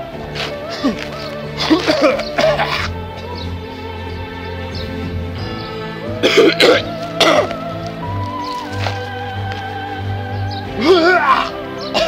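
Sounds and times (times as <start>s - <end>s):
music with gliding tones: 0.0s - 12.0s
man coughing: 1.6s - 2.9s, 6.2s - 7.5s.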